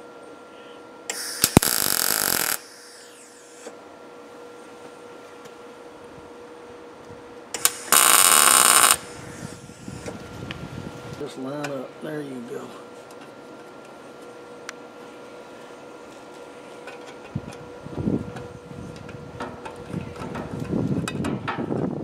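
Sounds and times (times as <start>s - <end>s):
welder bursts: 1.1s - 3.7s, 7.5s - 10.1s.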